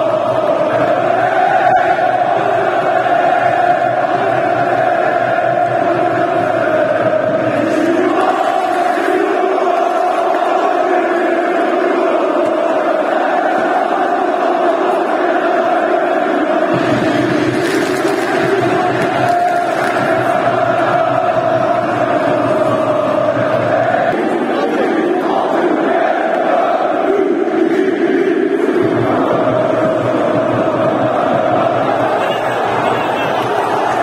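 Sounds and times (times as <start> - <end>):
crowd chanting: 0.0 - 34.0.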